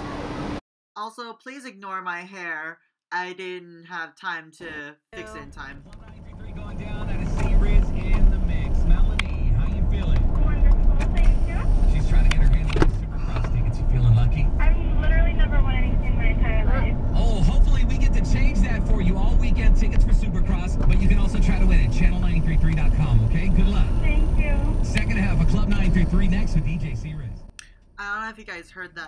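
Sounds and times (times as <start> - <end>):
road and engine rumble: 0.0 - 0.6, 5.2 - 29.0
radio presenter talking: 4.6 - 27.4.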